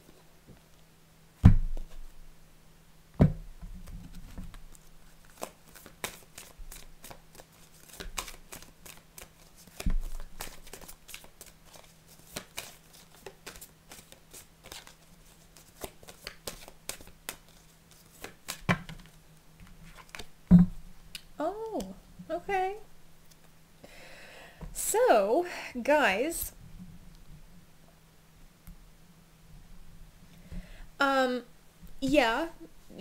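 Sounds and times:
cards being shuffled: 3.8s - 19.2s, 19.8s - 20.3s.

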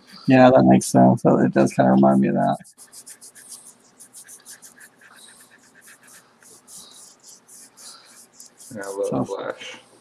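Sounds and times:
drawing tool scratching paper: 2.4s - 9.7s.

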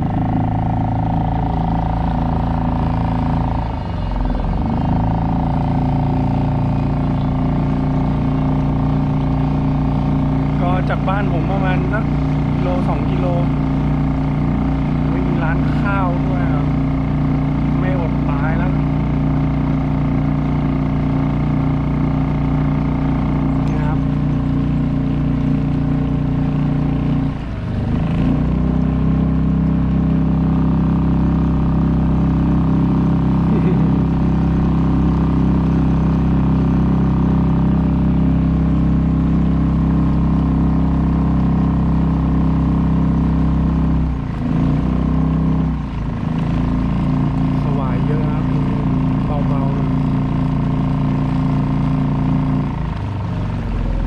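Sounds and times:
outboard motor running: 0.0s - 54.0s.

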